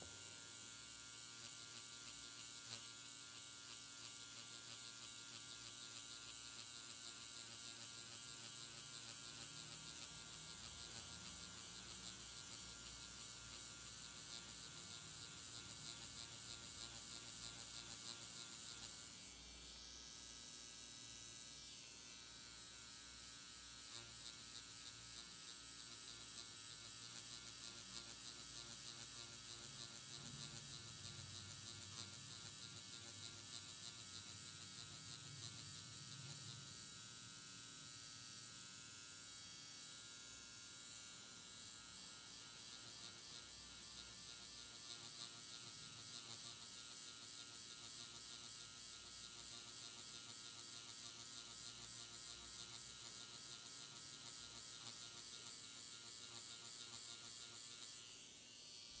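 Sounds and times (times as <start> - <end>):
tattoo machine buzzing: 0.0 - 59.0.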